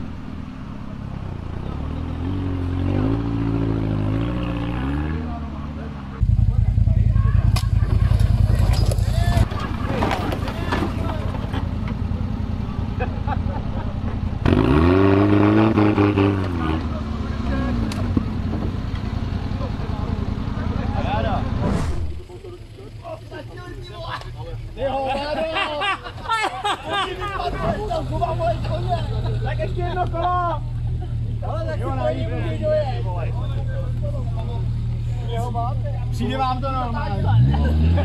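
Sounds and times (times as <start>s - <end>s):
off-road engines under load: 0.0s - 38.0s
voices: 0.0s - 38.0s
engine revving: 1.0s - 11.6s, 14.3s - 22.9s, 36.2s - 38.0s.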